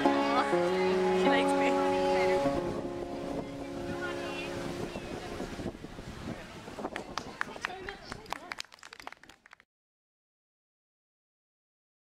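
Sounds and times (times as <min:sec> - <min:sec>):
acoustic guitar chords: 0:00.0 - 0:05.8
voices: 0:00.0 - 0:09.2
street noise: 0:00.0 - 0:09.6.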